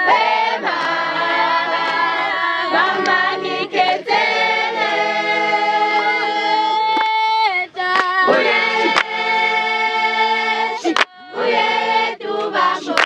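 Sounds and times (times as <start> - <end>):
girls singing a cappella: 0.0 - 13.0
hand claps: 0.6 - 1.1, 1.7 - 2.1, 2.9 - 3.2, 6.8 - 9.2, 10.8 - 11.2, 12.4 - 13.0.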